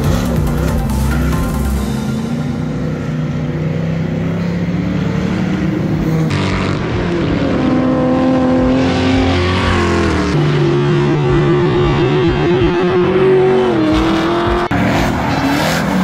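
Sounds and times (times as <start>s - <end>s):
car engines revving high: 0.0s - 16.0s.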